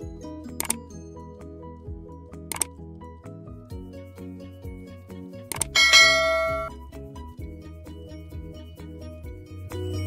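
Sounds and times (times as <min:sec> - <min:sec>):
background music with steady beat: 0:00.0 - 0:10.0
quick click: 0:02.5 - 0:02.8, 0:05.5 - 0:06.7
bright bell ding: 0:05.8 - 0:06.7.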